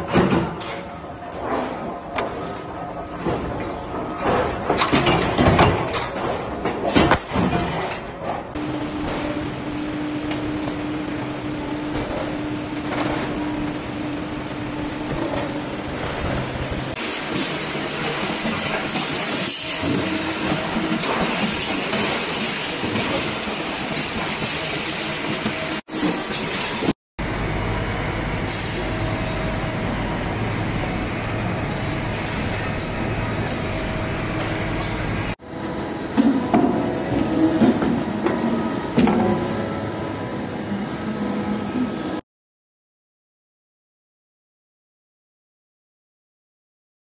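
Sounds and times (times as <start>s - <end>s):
press brake machine humming: 16.9s - 42.2s.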